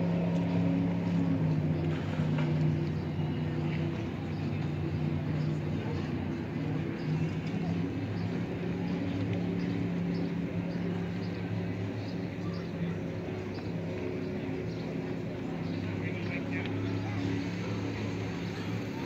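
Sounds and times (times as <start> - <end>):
people talking: 0.1 - 19.0.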